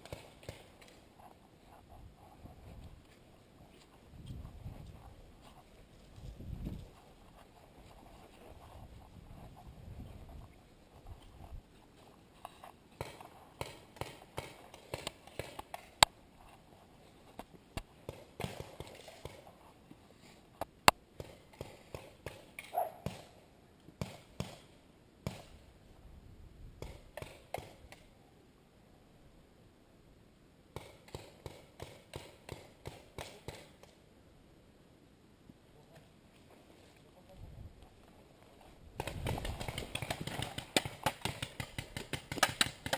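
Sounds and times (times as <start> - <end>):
paintball markers firing: 39.0 - 42.9
sharp cracks: 39.0 - 42.9.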